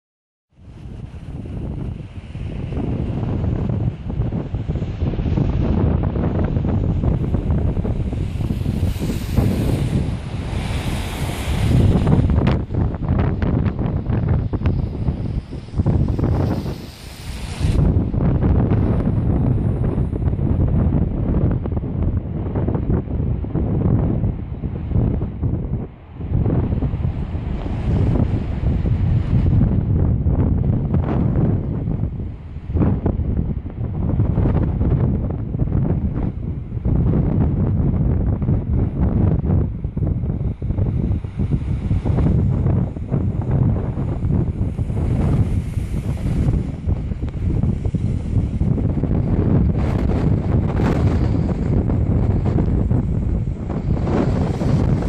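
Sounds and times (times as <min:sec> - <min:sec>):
wind buffeting microphone: 0:00.5 - 0:55.0
surf breaking on beach: 0:00.6 - 0:21.2, 0:26.2 - 0:55.0.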